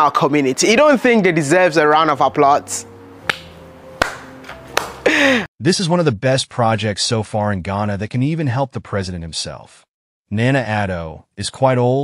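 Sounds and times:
faint background music: 0:00.0 - 0:05.9
man clapping hands: 0:03.3 - 0:05.2.

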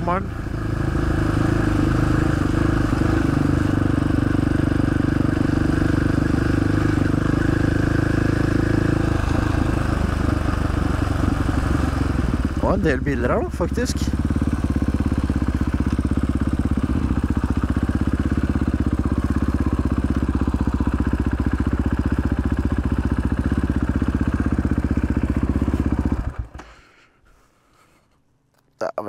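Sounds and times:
motorcycle engine running at low revs: 0:00.0 - 0:26.6.

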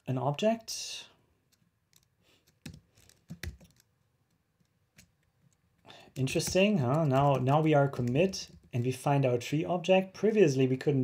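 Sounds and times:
computer keyboard keystrokes: 0:01.5 - 0:03.9, 0:06.2 - 0:08.9.

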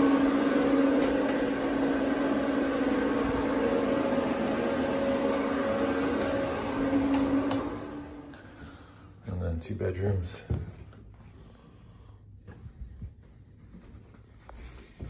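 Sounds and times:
exhaust fan humming: 0:00.0 - 0:15.0.

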